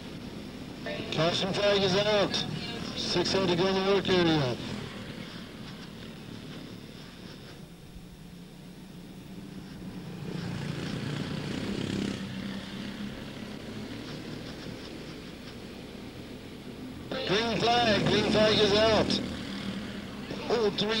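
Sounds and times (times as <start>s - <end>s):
race car engines droning: 0.0s - 21.0s.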